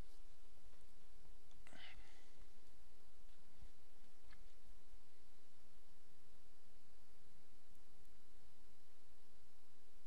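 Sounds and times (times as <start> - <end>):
microphone hiss and hum: 0.0 - 10.0
faint breathy sound: 1.5 - 3.9.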